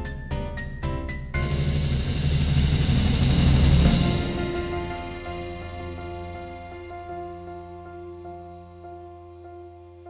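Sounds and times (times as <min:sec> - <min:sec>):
cymbal hiss: 0:01.4 - 0:07.4
percussion roll: 0:01.4 - 0:07.8
low drum rumble: 0:01.4 - 0:08.8.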